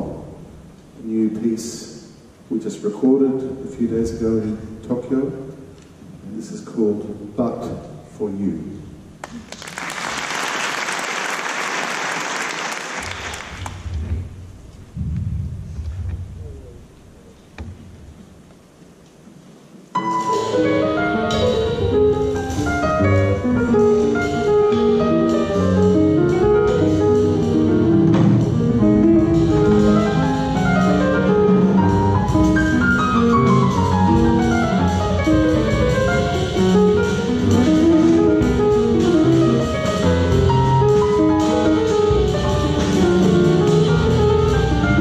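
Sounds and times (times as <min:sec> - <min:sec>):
piano: 0:00.0 - 0:45.0
drum kit: 0:13.0 - 0:18.5, 0:20.0 - 0:45.0
plucked double bass: 0:13.6 - 0:18.2, 0:20.7 - 0:45.0.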